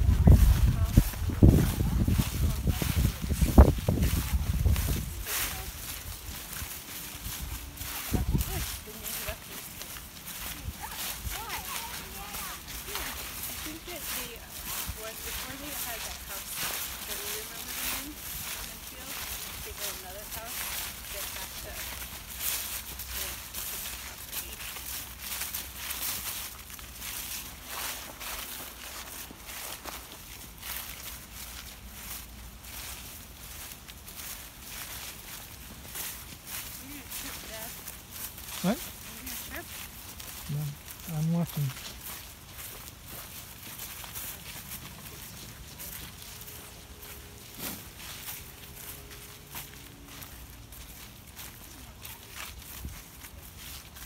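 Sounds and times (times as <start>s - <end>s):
footsteps through dry leaves: 0.0s - 54.0s
faint voices: 34.2s - 42.6s.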